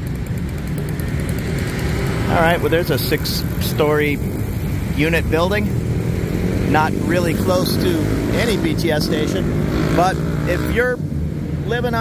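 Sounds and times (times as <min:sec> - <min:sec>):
motorbikes and cars passing: 0:00.0 - 0:12.0.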